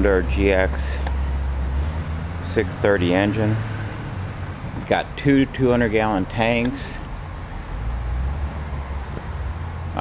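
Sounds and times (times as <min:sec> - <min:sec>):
outdoor background noise: 0:00.0 - 0:10.0.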